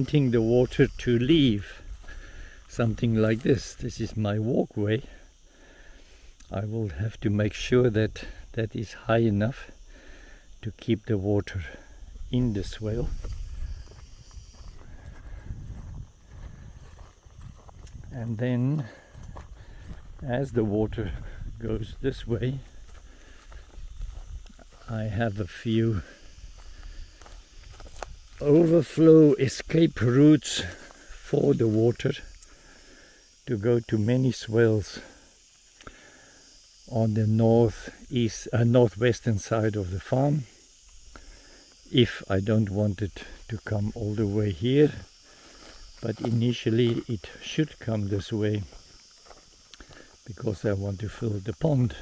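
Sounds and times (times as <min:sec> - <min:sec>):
footsteps on dirt path: 0:00.0 - 0:04.2, 0:11.6 - 0:33.4, 0:40.5 - 0:41.9, 0:43.1 - 0:52.0
high-pitched insect drone: 0:00.0 - 0:52.0.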